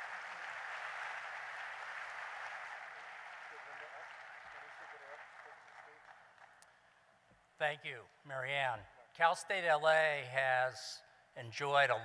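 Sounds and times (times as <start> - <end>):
audience applauding: 0.0 - 6.6.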